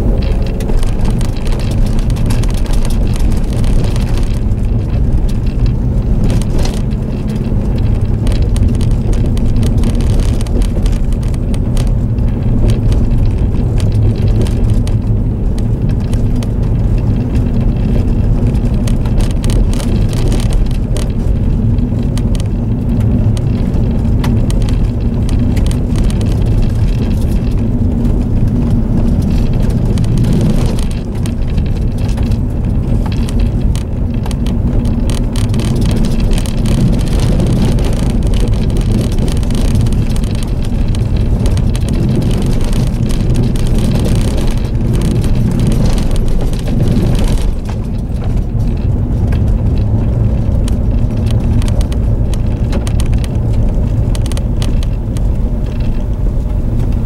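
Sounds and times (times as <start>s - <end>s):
car engine and road rumble: 0.0s - 57.0s
interior rattles: 0.0s - 57.0s
tyres crackling over gravel: 0.0s - 57.0s.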